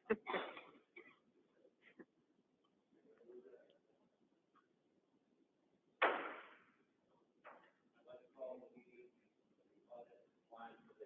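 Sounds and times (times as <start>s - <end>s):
sharp knock with echo: 6.0s - 6.7s.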